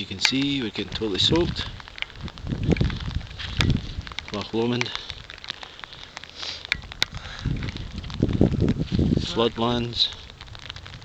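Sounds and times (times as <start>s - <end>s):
rain ticking on microphone: 0.0s - 11.0s
wind buffeting microphone: 0.0s - 11.0s.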